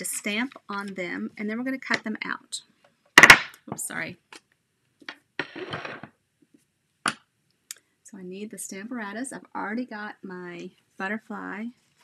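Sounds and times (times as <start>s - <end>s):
acrylic tool scraping on mat: 5.4s - 6.1s.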